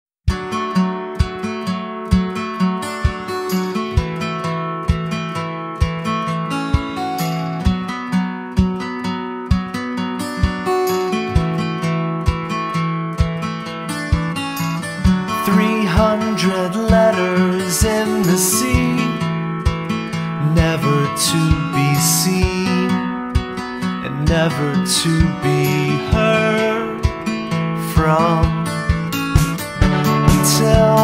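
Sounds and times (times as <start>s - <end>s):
acoustic guitar picking notes: 0.3s - 31.0s.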